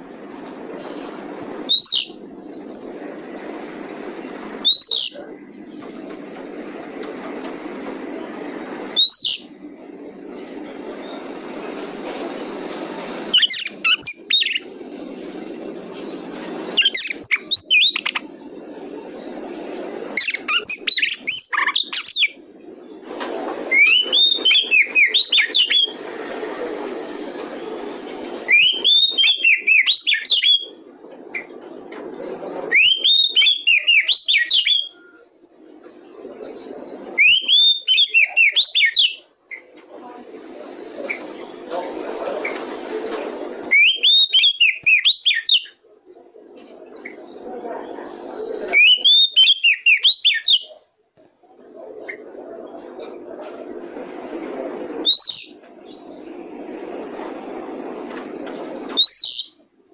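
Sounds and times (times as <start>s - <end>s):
steady background noise: 0.0s - 59.9s
bird singing whistled phrases: 1.7s - 2.2s, 4.6s - 5.2s, 9.0s - 9.5s, 23.7s - 25.9s, 28.5s - 30.8s, 32.7s - 35.2s, 37.2s - 39.2s, 43.7s - 45.8s, 48.7s - 50.7s, 59.0s - 59.6s.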